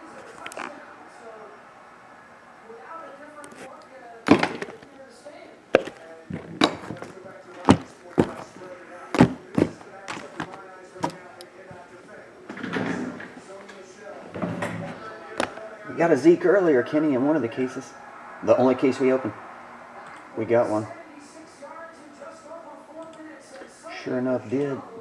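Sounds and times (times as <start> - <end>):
soft handling noise: 3.4 - 5.1, 5.8 - 15.8
cardboard boxes knocking on table: 4.3 - 4.8, 5.8 - 8.5, 9.2 - 11.2.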